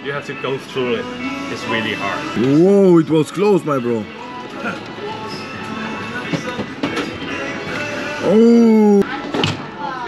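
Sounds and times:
music playing: 0:00.0 - 0:09.2
faint voices: 0:08.0 - 0:10.0.

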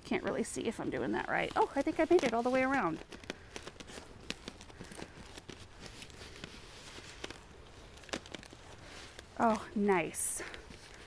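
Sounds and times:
duct tape clicks and crinkles: 0:01.1 - 0:11.0.

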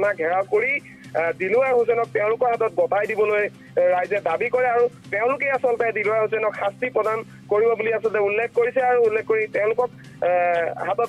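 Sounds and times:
low background music: 0:00.0 - 0:11.0.

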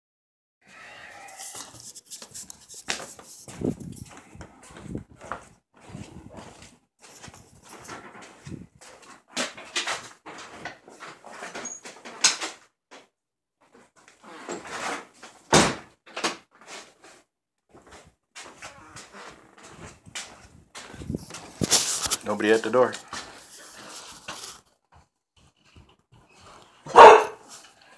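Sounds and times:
phone rustling and scraping: 0:00.8 - 0:12.2, 0:16.6 - 0:27.9.

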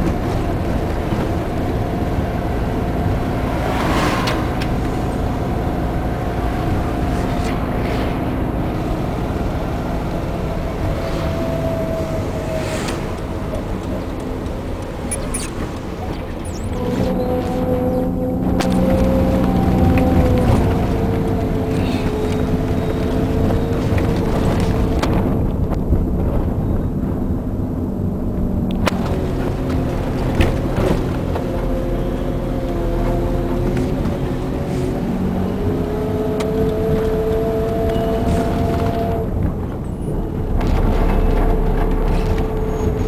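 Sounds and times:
car engine and road noise: 0:00.0 - 0:43.0.

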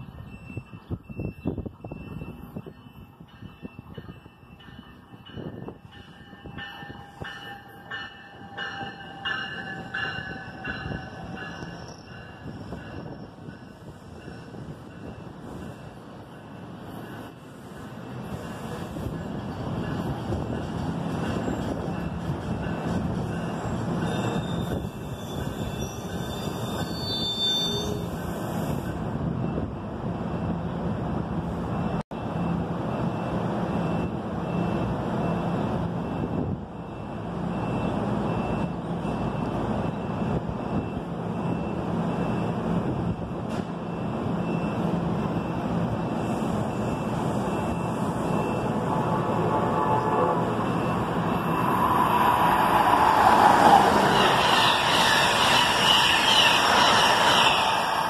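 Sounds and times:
train wheels rumbling on rails: 0:00.0 - 0:58.0.

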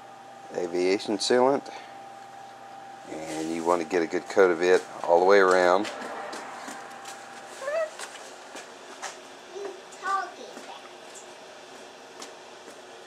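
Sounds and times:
high-pitched vocal sounds: 0:07.6 - 0:08.0.

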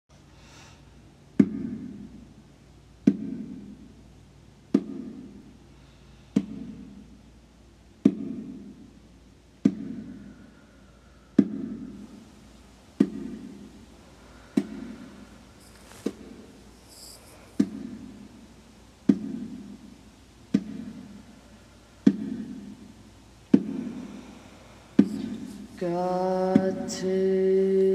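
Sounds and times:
bongo struck by hand: 0:04.7 - 0:05.3, 0:08.0 - 0:08.7, 0:19.1 - 0:19.8, 0:22.0 - 0:22.8.

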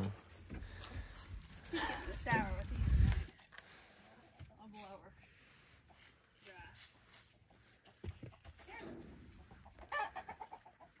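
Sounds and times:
chickens clucking: 0:07.1 - 0:11.0.

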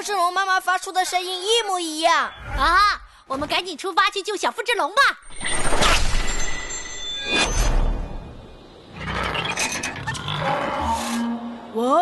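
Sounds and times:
high shimmering tones: 0:05.2 - 0:08.9.

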